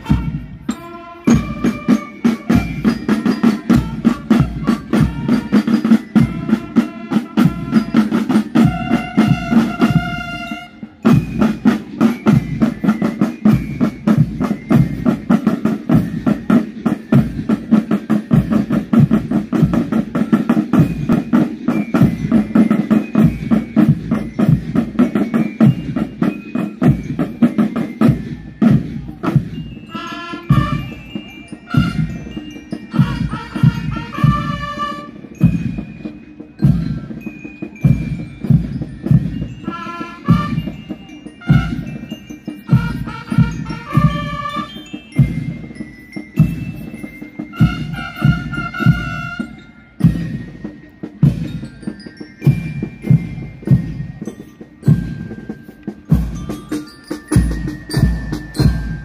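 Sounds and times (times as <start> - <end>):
bell lyres ringing melody: 0.0 - 59.0
marching band drums: 0.0 - 59.0.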